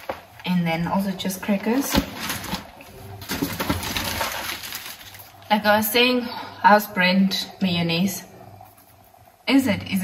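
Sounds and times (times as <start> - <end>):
plastic bags rustling and crinkling: 1.6 - 5.6.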